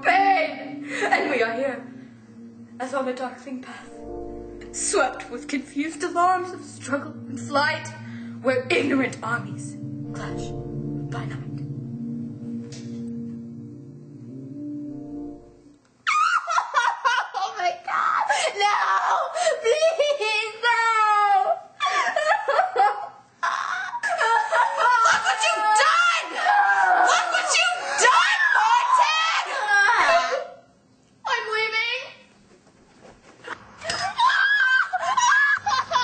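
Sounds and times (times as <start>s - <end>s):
person screaming: 24.8s - 30.4s.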